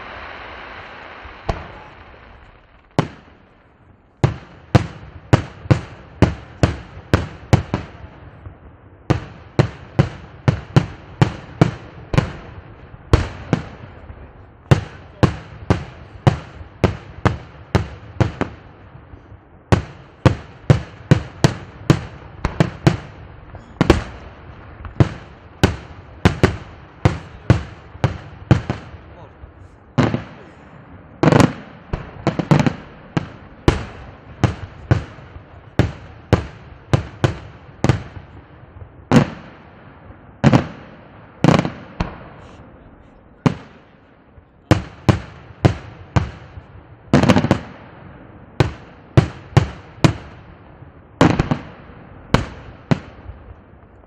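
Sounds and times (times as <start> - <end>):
fireworks bursting: 0.0 - 54.0.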